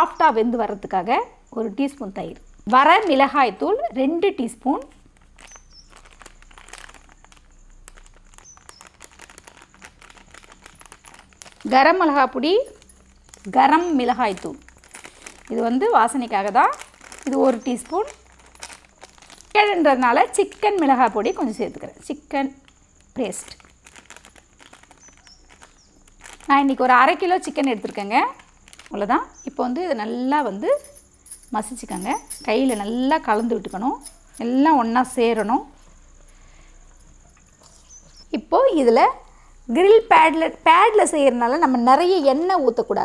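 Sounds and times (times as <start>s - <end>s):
person speaking: 11.6s - 18.2s, 26.5s - 35.8s.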